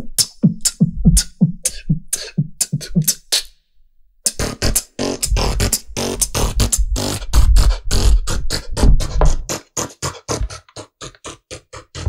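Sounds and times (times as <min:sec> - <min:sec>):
techno beatboxing into a microphone: 0:00.0 - 0:03.5, 0:04.3 - 0:12.0.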